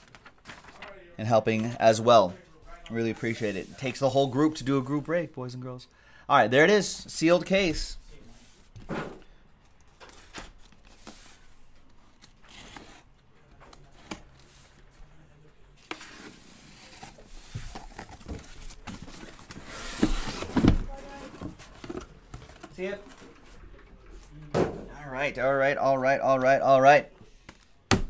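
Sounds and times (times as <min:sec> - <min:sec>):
cardboard rustling: 0:00.0 - 0:01.0, 0:08.0 - 0:24.3
boxes scraping and thudding: 0:16.0 - 0:23.4.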